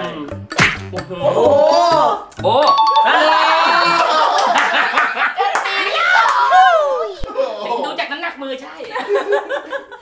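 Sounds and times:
two-note doorbell chime: 2.6 - 3.5.

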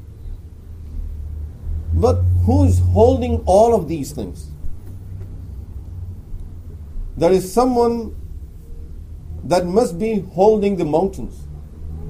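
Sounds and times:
low rumble: 0.0 - 9.5.

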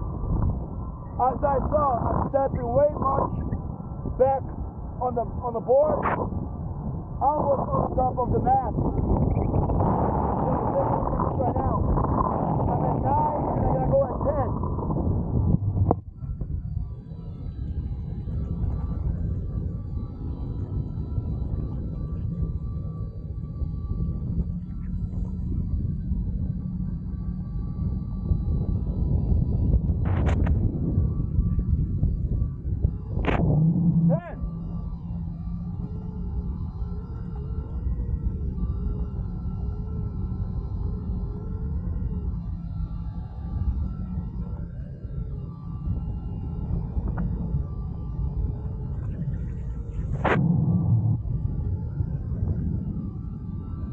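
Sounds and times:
thin motor whine: 0.0 - 53.9.

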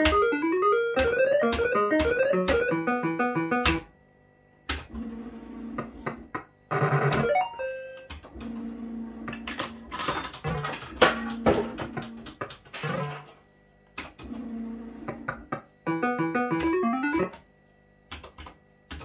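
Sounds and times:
electronic beeps and buzzing tones: 0.2 - 3.9, 6.7 - 8.1, 15.8 - 17.4
electronic jingle: 15.9 - 17.3.

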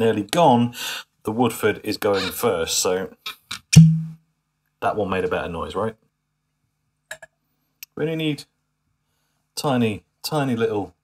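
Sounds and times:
sharp click: 3.7 - 4.2.

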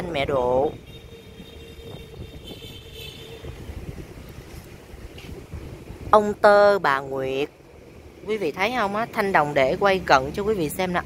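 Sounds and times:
low uneven rumble: 1.8 - 10.8.

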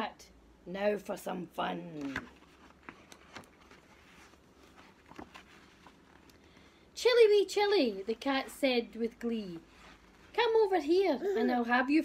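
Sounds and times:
book pages being turned: 1.9 - 6.7, 9.6 - 10.3.

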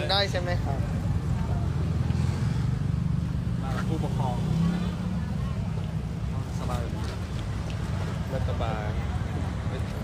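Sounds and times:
motor vehicle rumbling: 0.0 - 10.0.

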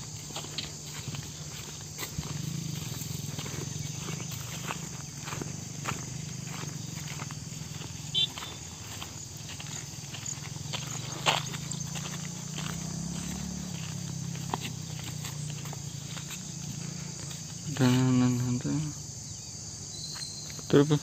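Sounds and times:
footsteps on dirt path: 0.0 - 21.0.

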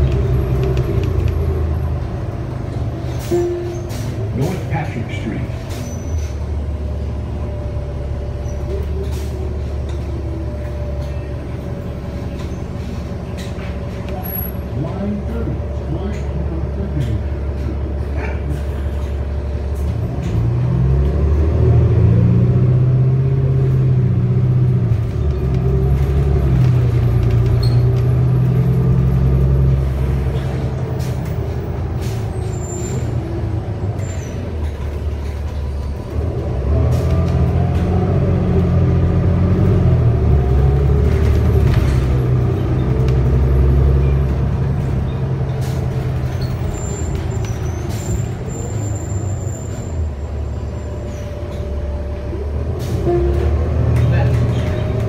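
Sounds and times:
bus engine accelerating: 0.0 - 55.0.

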